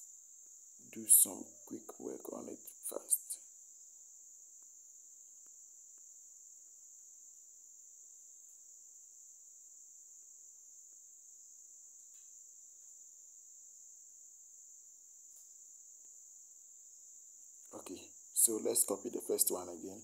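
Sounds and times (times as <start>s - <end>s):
faint high-pitched drone: 0.8s - 3.4s, 17.7s - 20.0s.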